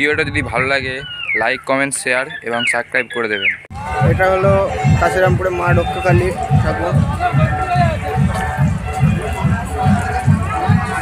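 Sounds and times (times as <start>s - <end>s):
song over loudspeakers: 3.7s - 11.0s.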